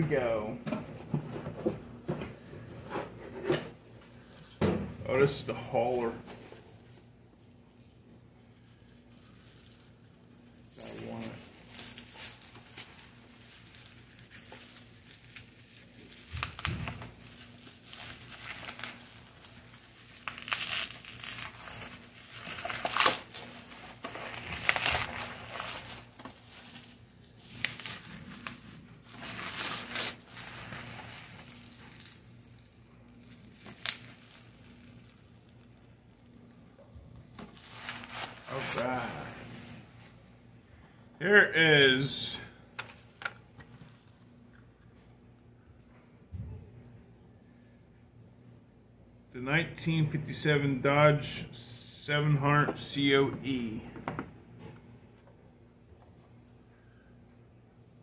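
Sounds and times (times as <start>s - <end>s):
packaging crinkling and tearing: 7.3s - 39.8s.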